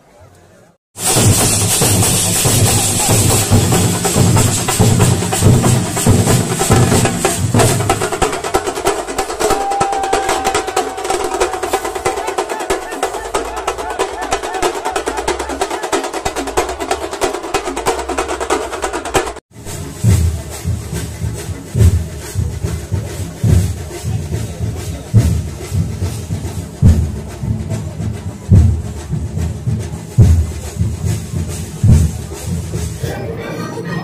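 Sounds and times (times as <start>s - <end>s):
fast drumming with sticks: 1.0s - 33.2s
pounding beat with bass hits: 1.0s - 33.2s.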